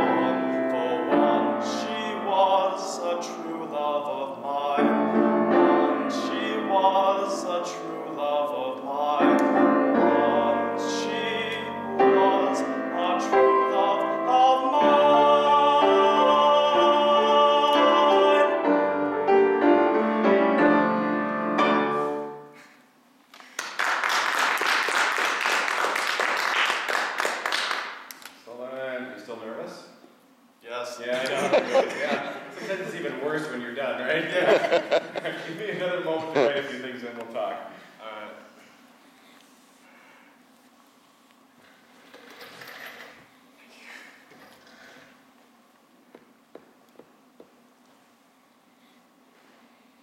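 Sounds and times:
man singing: 0.0s - 19.1s
piano chords: 0.0s - 22.6s
faint room hum: 0.0s - 50.0s
audience clapping: 23.3s - 28.4s.

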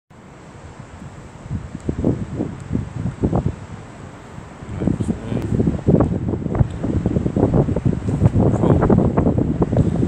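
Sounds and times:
wind buffeting microphone: 0.5s - 10.0s.

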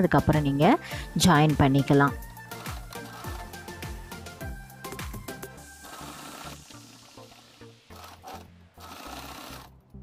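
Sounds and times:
sewing machine stitching: 2.4s - 3.7s, 5.7s - 9.8s.

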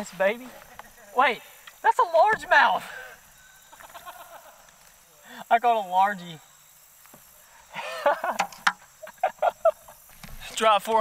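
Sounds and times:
man laughing in short bursts: 3.7s - 4.6s, 7.7s - 8.4s.

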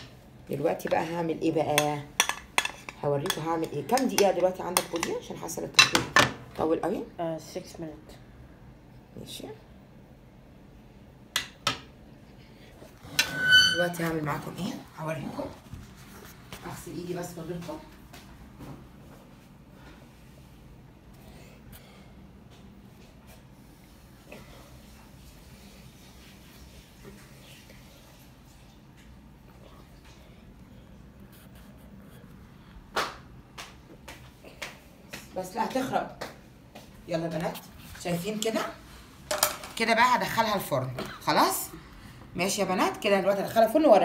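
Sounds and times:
kitchenware clinking: 1.7s - 6.4s.

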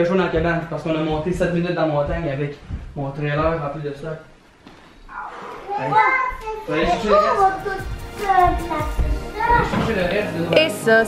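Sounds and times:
children's excited chatter: 5.1s - 9.9s.

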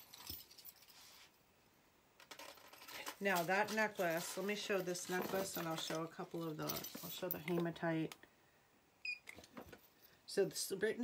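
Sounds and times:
small metal jewelry clinking: 0.0s - 1.0s, 2.3s - 7.7s.

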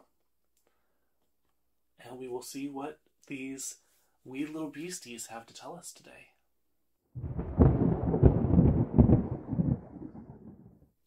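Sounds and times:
heavy booms: 7.2s - 10.6s
deep rumbling sound effect: 7.2s - 10.8s.

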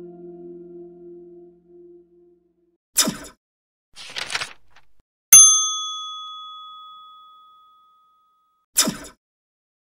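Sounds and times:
bell-like ding: 5.4s - 8.3s.

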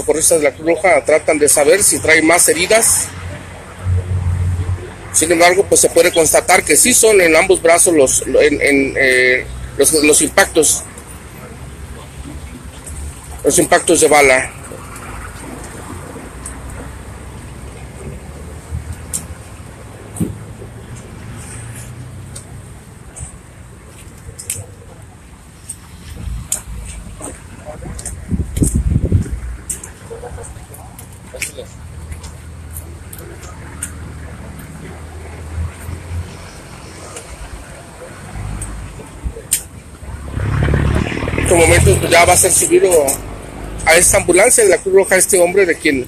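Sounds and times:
street traffic rumble: 0.0s - 46.0s.

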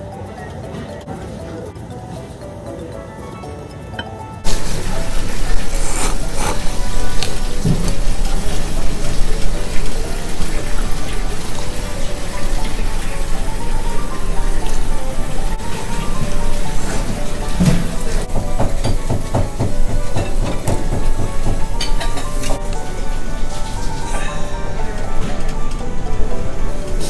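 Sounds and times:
quiet background music: 0.0s - 27.0s
wet mouth and bowl noises: 4.5s - 10.2s
noodles being slurped: 5.2s - 7.3s.

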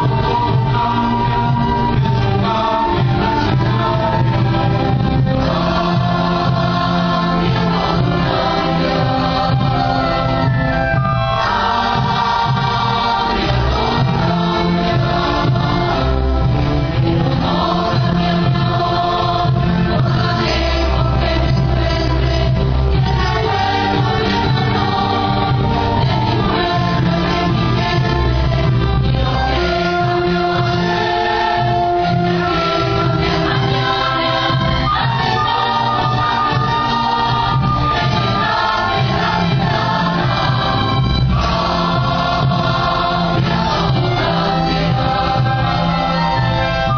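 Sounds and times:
choir singing: 0.0s - 46.9s
orchestra strings playing: 0.0s - 46.9s.

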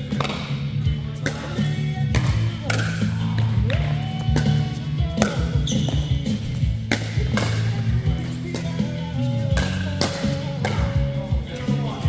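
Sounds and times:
music playing: 0.0s - 12.0s
ball bouncing on court: 0.1s - 0.5s, 1.2s - 8.9s, 9.5s - 11.0s.

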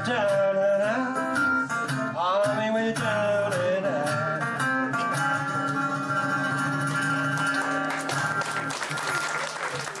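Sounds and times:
audience applause: 7.2s - 10.0s.

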